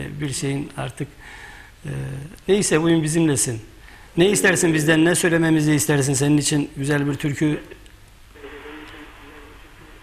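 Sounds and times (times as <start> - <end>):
man speaking over telephone: 4.2 - 7.8.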